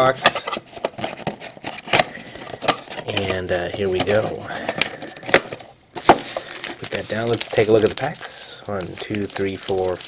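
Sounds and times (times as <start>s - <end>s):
cardboard box rustling: 0.5s - 10.0s.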